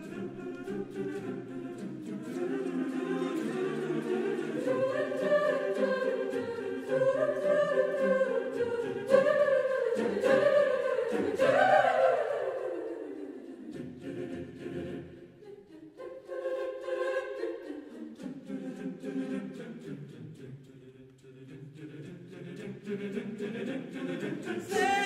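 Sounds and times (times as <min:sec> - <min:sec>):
choir singing a cappella: 0:00.0 - 0:25.0.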